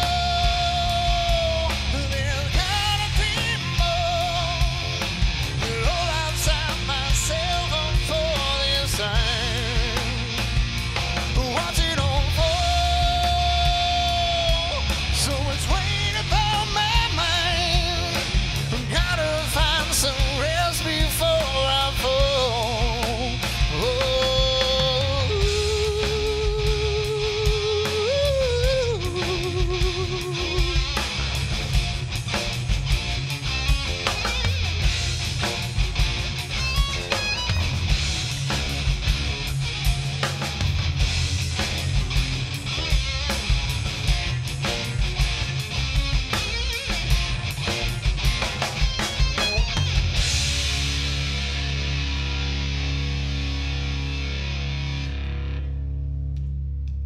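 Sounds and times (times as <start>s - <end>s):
hard rock band playing live: 0.0s - 56.4s.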